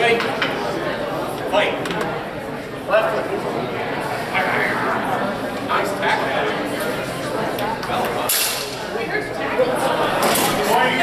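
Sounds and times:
people talking in echoing hall: 0.0 - 11.0.

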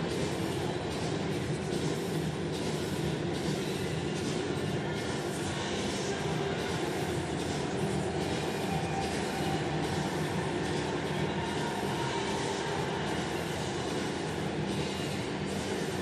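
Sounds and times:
stadium crowd murmur: 0.0 - 16.0.

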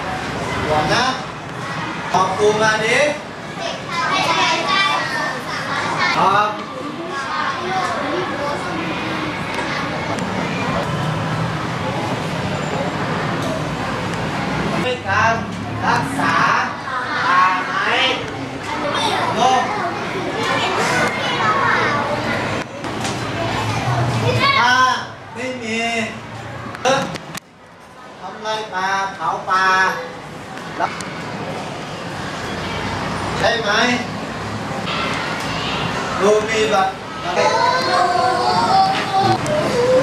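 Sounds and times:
children speaking at once: 3.5 - 10.8, 16.8 - 17.8, 18.6 - 24.7, 37.1 - 40.0
loud child's voice: 3.6 - 6.2, 23.6 - 24.7, 37.2 - 40.0.

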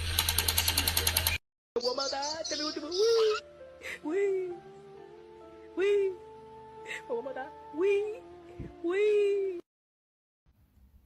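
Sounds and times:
rapid mechanical clicking: 0.0 - 1.4.

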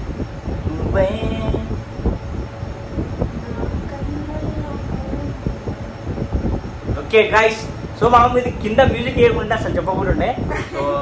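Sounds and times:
faint wavering tones: 0.0 - 8.4
garbled rumbling phone audio: 0.0 - 11.0.

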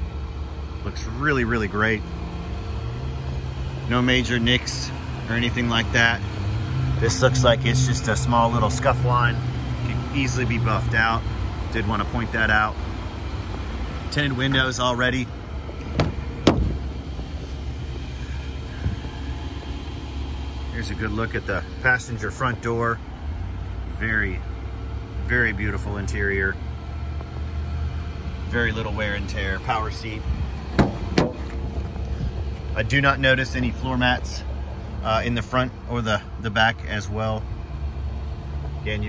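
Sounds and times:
engine idling: 0.0 - 39.0.

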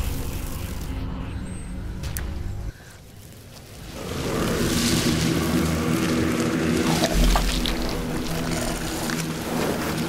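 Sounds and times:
low drone tones: 0.0 - 10.0
dense rumbling noise: 3.8 - 10.0.

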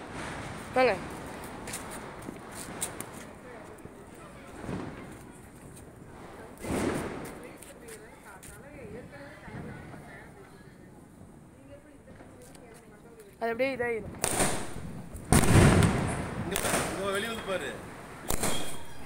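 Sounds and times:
faint crackles: 0.2 - 13.5
muffled firecracker bangs: 6.6 - 7.6, 14.1 - 19.0.

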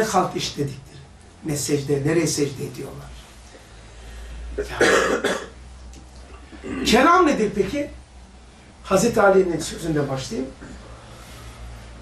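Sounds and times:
person coughing: 4.6 - 5.6, 6.6 - 6.9.

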